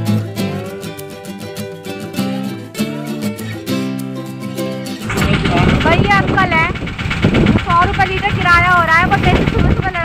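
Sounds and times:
vehicle engine rumble: 5.0s - 10.0s
woman speaking loudly: 7.6s - 10.0s.

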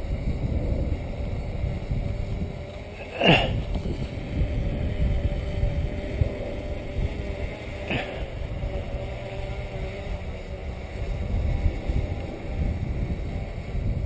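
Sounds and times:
drone propellers humming: 0.0s - 14.0s
wind rumble on microphone: 0.0s - 14.0s.

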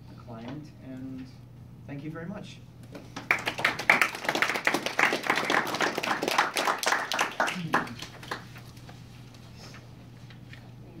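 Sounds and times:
audience applauding: 3.2s - 8.6s.

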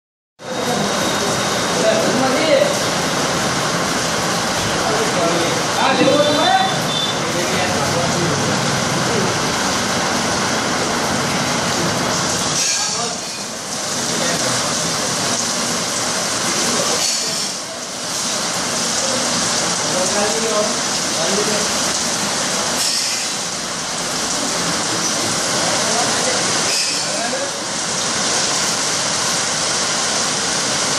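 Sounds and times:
people talking: 0.4s - 3.0s, 4.5s - 9.5s, 12.6s - 13.3s, 13.9s - 15.5s, 16.4s - 18.0s, 18.8s - 21.9s, 24.4s - 27.7s
heavy rain pouring: 0.4s - 30.9s.

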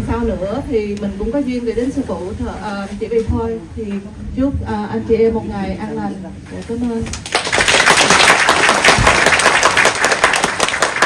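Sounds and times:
crowd applauding: 7.1s - 11.0s.

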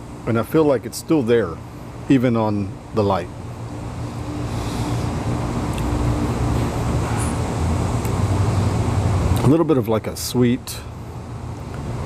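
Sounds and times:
low mechanical hum and rumble: 0.0s - 12.0s.

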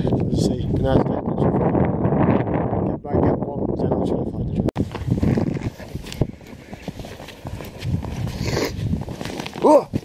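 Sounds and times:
footsteps crunching through snow: 4.8s - 10.0s.

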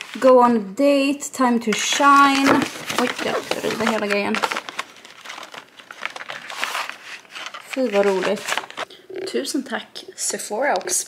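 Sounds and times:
plastic sachets crinkling: 1.7s - 8.9s
cardboard box rustling: 2.0s - 8.8s.

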